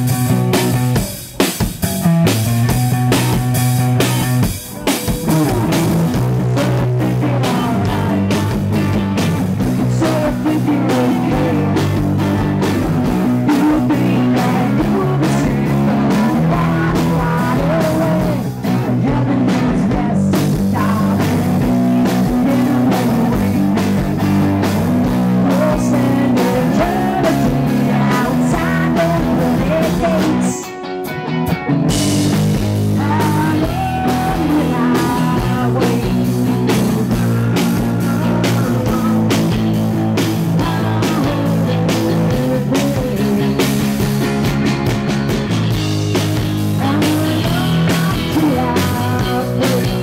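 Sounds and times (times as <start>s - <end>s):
drums: 0.0s - 50.0s
electric bass: 0.0s - 50.0s
electric guitar: 0.0s - 50.0s
woman singing: 5.4s - 8.8s, 9.8s - 11.8s, 13.4s - 24.0s, 25.0s - 30.7s, 33.0s - 37.2s, 40.5s - 43.8s, 46.7s - 50.0s.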